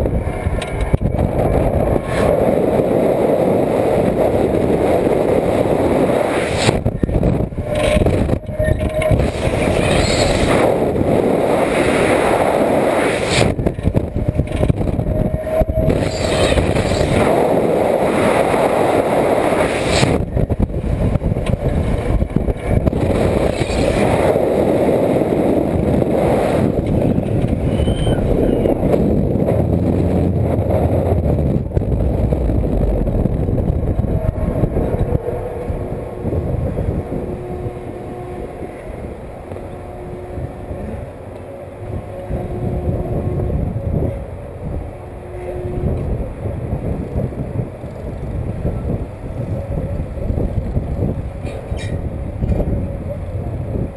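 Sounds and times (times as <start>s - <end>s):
wind rushing over microphone: 0.0s - 53.9s.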